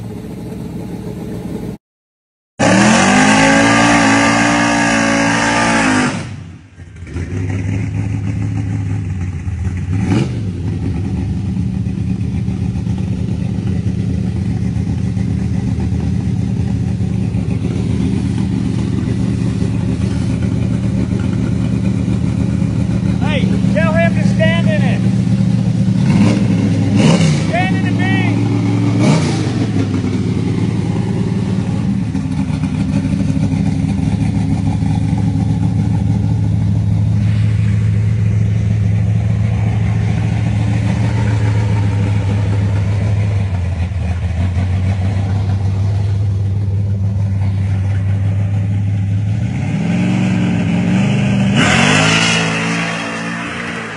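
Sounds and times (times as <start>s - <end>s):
car engine idling with throttle blips: 0.0s - 1.8s, 2.6s - 53.9s.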